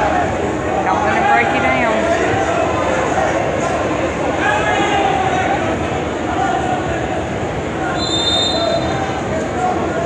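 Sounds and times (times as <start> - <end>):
murmur of gym crowd: 0.0 - 10.0
referee's whistle blast: 8.0 - 9.0.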